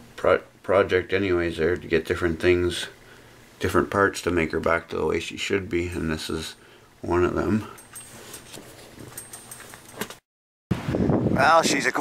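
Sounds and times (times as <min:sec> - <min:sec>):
faint rustling: 0:07.6 - 0:10.2
wind buffeting microphone: 0:10.7 - 0:11.9.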